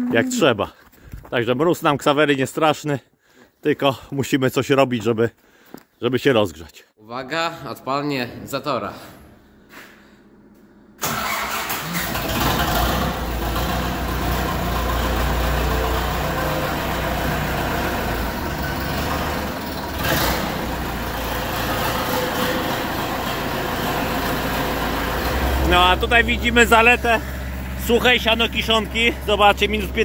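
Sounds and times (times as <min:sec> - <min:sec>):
diesel tractor engine starting: 0:08.4 - 0:30.0
diesel engine idling rumble: 0:12.3 - 0:30.0.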